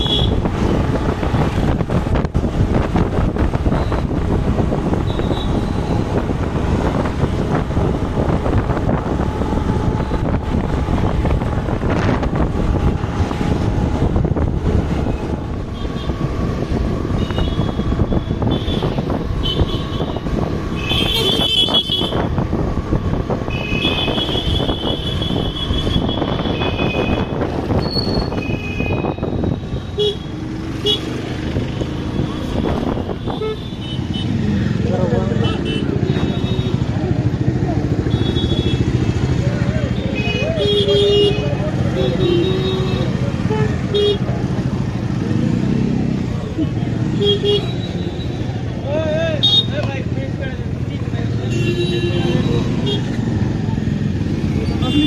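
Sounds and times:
wind: 0:00.0 - 0:55.0
vehicle horns beeping: 0:05.0 - 0:06.0, 0:17.1 - 0:22.3, 0:23.5 - 0:31.2, 0:32.2 - 0:34.5, 0:38.0 - 0:39.2, 0:39.9 - 0:44.3, 0:47.0 - 0:48.5, 0:49.4 - 0:49.8, 0:51.4 - 0:53.3, 0:54.6 - 0:55.0.

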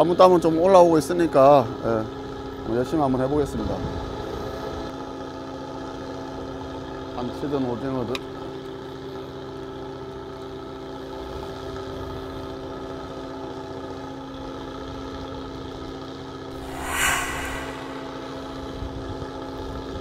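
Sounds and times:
short rush of noise: 0:16.6 - 0:18.8.

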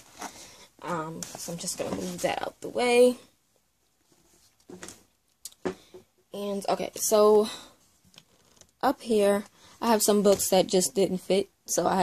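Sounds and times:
soft rustles of handling: 0:00.0 - 0:05.4.

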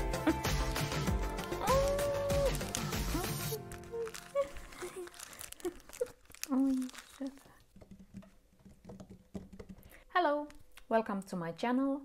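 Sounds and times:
hands tapping on wooden table: 0:07.7 - 0:10.0.

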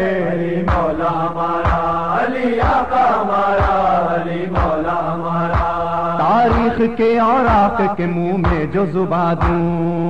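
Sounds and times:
men chanting long held notes: 0:00.0 - 0:09.8
deep rhythmic thump: 0:00.0 - 0:10.0.

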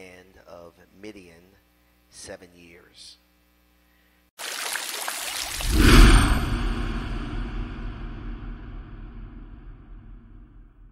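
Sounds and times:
rushing low rumble: 0:05.5 - 0:10.9.

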